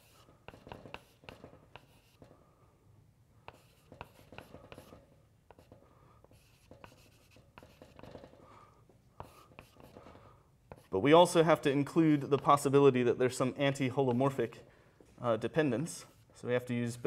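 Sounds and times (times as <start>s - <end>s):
chalk tapping and scratching: 0.0s - 2.4s, 3.4s - 8.5s, 9.2s - 11.0s, 12.1s - 12.8s, 15.9s - 16.4s.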